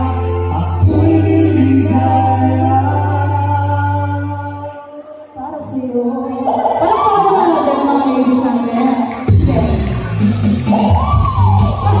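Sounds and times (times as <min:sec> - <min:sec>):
woman singing into microphone: 0:00.0 - 0:09.8.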